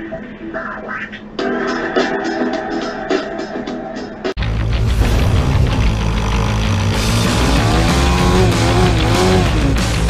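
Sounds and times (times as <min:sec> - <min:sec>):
loud driving music: 0:00.6 - 0:10.0
dirt bike engine running: 0:04.4 - 0:10.0.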